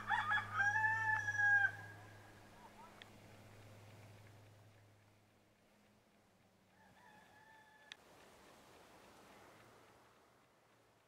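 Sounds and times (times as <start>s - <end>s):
rooster crowing: 0.0s - 2.2s, 6.7s - 8.0s.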